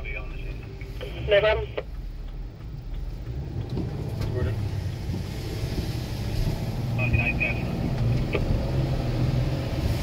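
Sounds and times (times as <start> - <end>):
car cabin rumble on wet road: 0.0 - 10.0.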